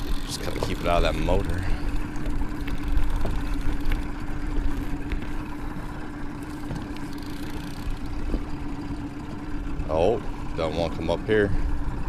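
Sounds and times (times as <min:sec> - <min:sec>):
boat motor running: 0:00.0 - 0:12.0.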